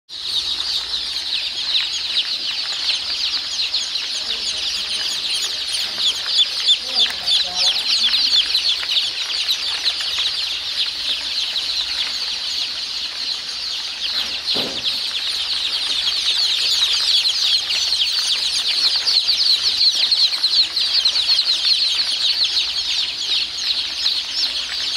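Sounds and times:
chicks peeping: 0.1s - 24.9s.

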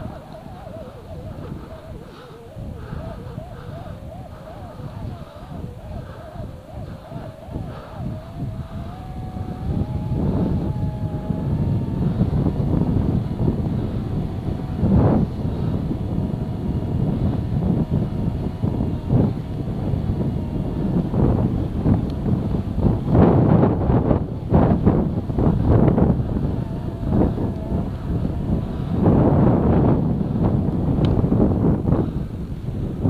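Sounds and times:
vehicle engine driving slowly: 0.0s - 33.0s
wind buffeting microphone: 0.0s - 33.0s.

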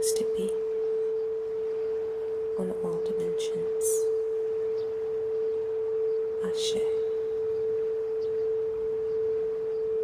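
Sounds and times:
crystal singing bowl tone: 0.0s - 10.0s.

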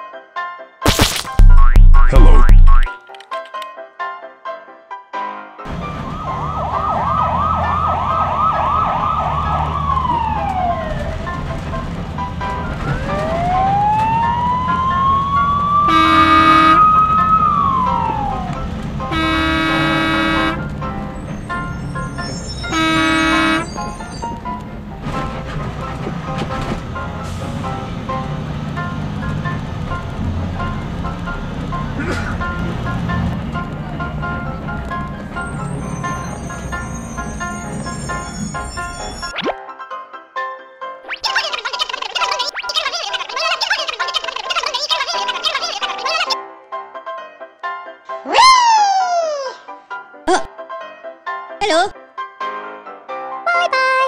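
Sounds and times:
cartoon horn honks: 0.9s - 2.9s, 15.9s - 16.9s, 19.1s - 20.6s, 22.6s - 24.2s
background music: 37.6s - 54.0s.

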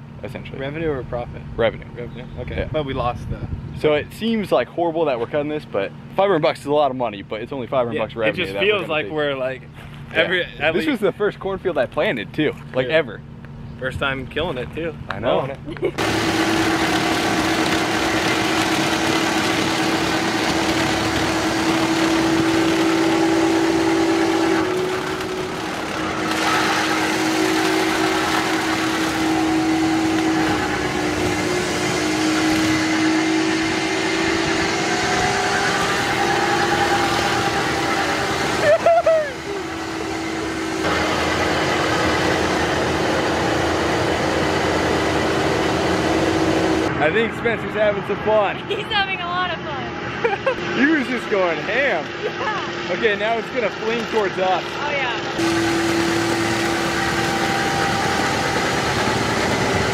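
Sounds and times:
loader engine with whine: 0.0s - 59.9s.

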